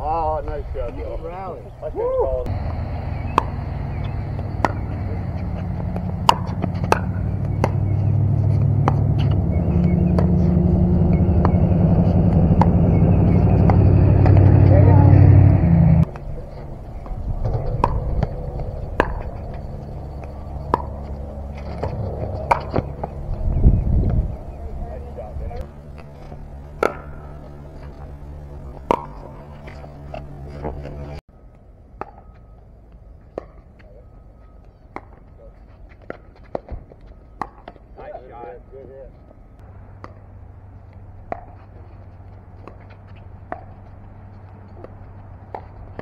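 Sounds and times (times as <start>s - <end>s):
low engine hum: 1.6s - 31.2s.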